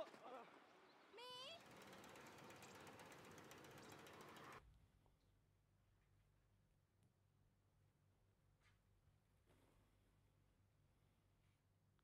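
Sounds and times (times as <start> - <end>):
bicycle freewheel ticking: 1.6 - 4.6.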